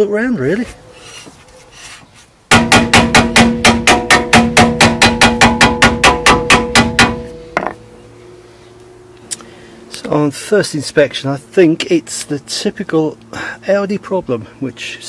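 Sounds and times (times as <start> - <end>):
hammer knock: 2.5 - 7.8
hammer tapping on metal disc: 2.5 - 7.8.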